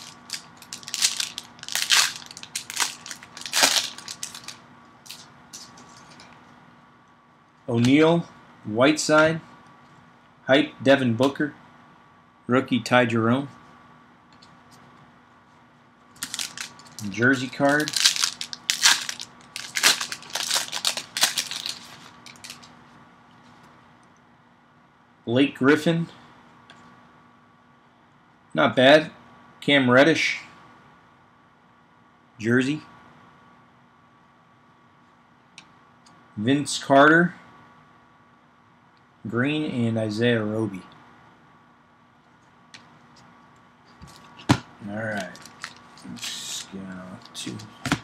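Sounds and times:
plastic wrapper crinkling and tearing: 0.0s - 5.7s, 16.2s - 22.7s, 45.1s - 47.6s.

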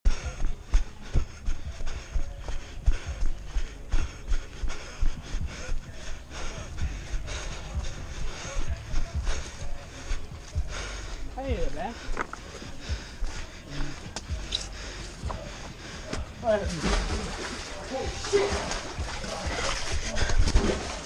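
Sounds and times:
heavy breathing: 0.1s - 21.0s
running footsteps on dirt: 0.1s - 21.0s.

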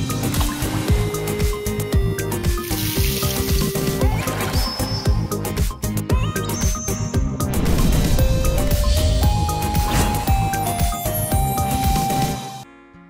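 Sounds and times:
background music with steady beat: 0.0s - 13.0s.

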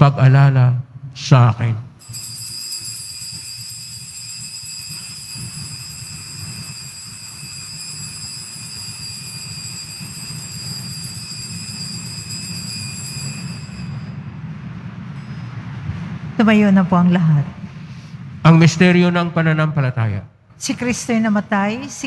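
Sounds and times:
low rumble of church: 0.0s - 22.0s
altar bells ringing: 2.0s - 16.0s.

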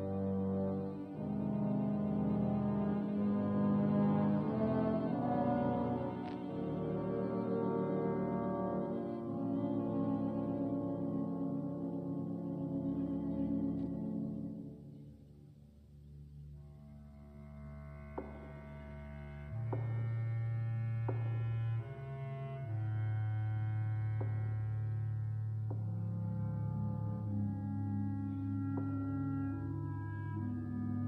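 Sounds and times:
orchestra holding low note: 0.0s - 14.9s
orchestra sustained chords: 0.0s - 31.0s.

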